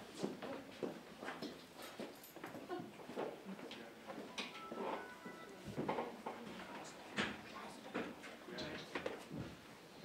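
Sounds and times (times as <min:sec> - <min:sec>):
people moving: 0:00.2 - 0:09.6.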